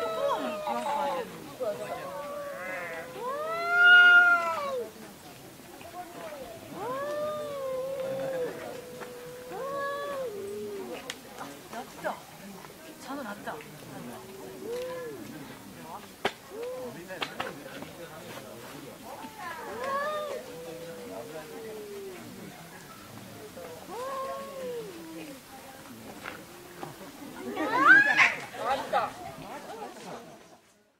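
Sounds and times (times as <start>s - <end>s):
cat yowling: 0.0s - 4.9s, 6.7s - 11.0s, 19.4s - 22.5s, 23.8s - 25.4s.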